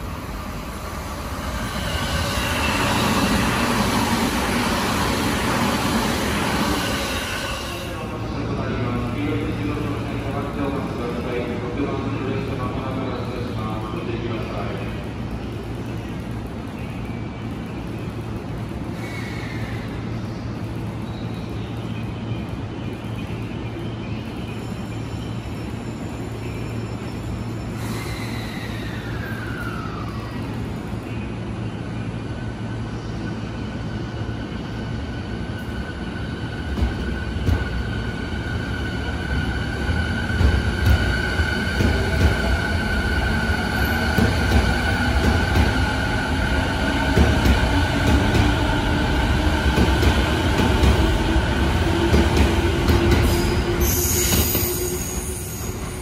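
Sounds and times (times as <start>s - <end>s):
electric train humming: 0.0s - 56.0s
train rumbling moving off: 0.0s - 56.0s.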